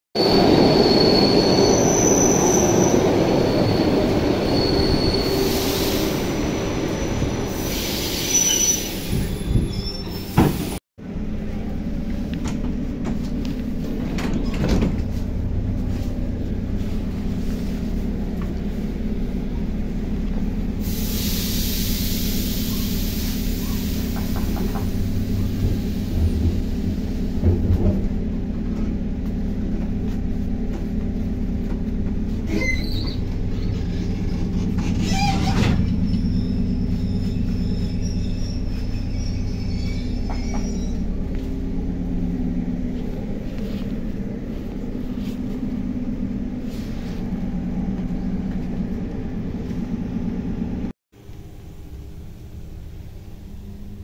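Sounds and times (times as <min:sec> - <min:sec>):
train wheels rumbling and squealing: 0:00.2 - 0:50.9
low hum of train machinery: 0:00.2 - 0:54.0
hiss: 0:20.8 - 0:25.0.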